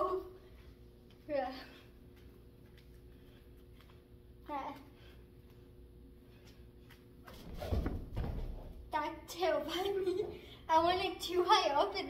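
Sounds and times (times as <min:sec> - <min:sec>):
girl speaking: 0:00.0 - 0:00.4, 0:01.2 - 0:01.9, 0:04.4 - 0:05.0, 0:08.9 - 0:12.0.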